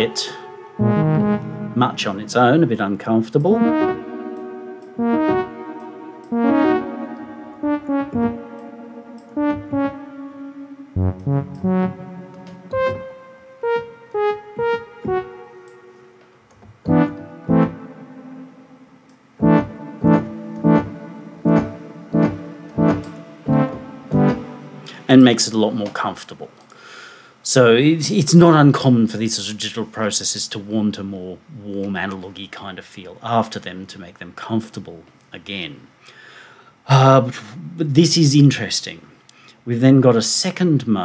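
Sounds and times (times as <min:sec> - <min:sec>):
synthesizer notes with delay: 0:00.0 - 0:16.3, 0:16.9 - 0:25.3.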